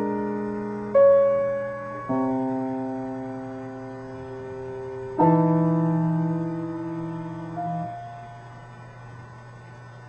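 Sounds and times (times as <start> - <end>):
held piano note: 0.0 - 9.0
low electrical hum: 0.0 - 10.0.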